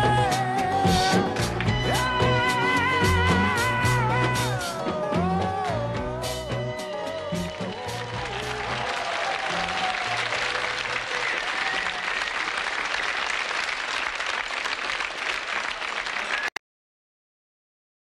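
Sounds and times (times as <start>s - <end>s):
pop song: 0.0s - 8.9s
audience applauding and cheering: 0.8s - 3.0s, 5.0s - 16.6s.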